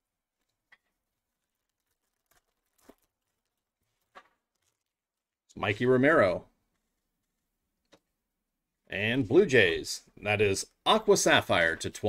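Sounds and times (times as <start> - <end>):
foil pack crinkling: 0.4 - 5.3.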